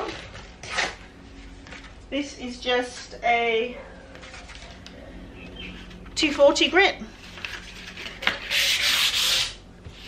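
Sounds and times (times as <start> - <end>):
sandpaper sanding wood: 8.4 - 9.6.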